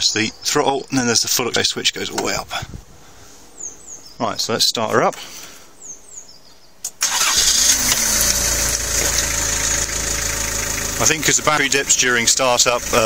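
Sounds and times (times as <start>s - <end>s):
diesel engine starting and idling: 7.0s - 13.0s.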